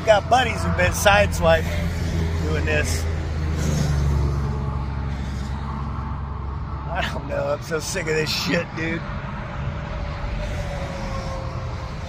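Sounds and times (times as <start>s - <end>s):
highway traffic rumble: 0.0s - 12.0s
vehicle passing: 0.0s - 12.0s.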